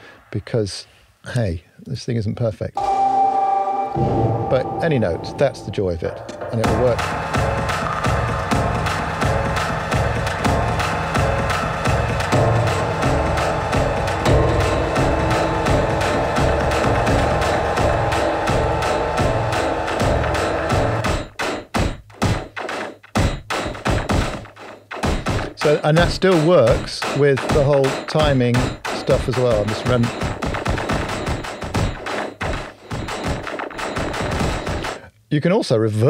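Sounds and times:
percussive click loop: 4.3 - 35.0
dense bass-heavy loop: 4.6 - 21.1.

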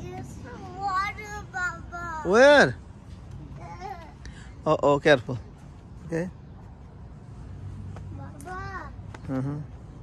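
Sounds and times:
child's sing-song voice: 8.1 - 9.0.

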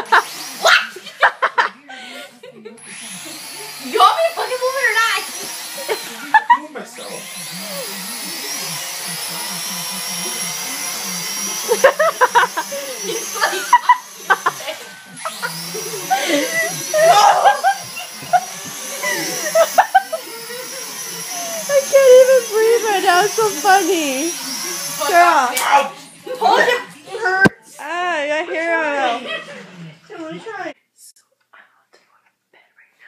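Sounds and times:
toy drone propellers whining: 0.0 - 1.1, 2.8 - 27.5
people laughing: 0.0 - 3.8, 5.2 - 9.5, 10.2 - 24.4, 26.2 - 27.5, 28.5 - 30.2.

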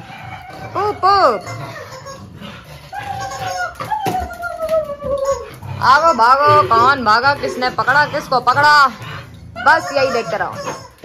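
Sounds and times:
squeaky rubber toy squeals: 0.7 - 2.3, 2.9 - 4.4, 9.6 - 11.0.

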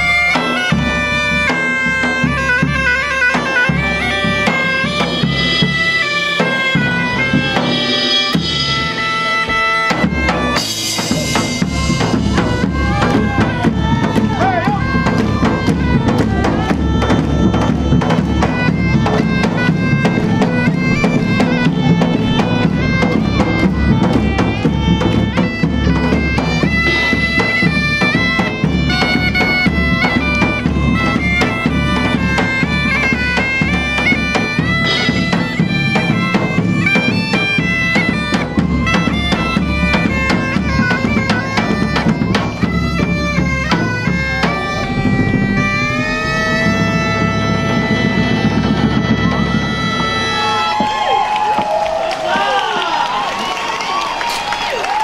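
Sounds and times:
bagpipes playing over drone: 0.0 - 51.1
large drums beating: 0.0 - 52.6
cymbal: 43.2 - 50.5.

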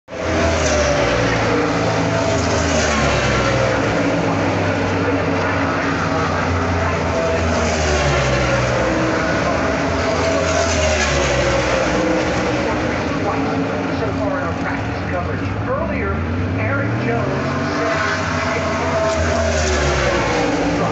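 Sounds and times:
race car engines droning: 0.0 - 20.9.

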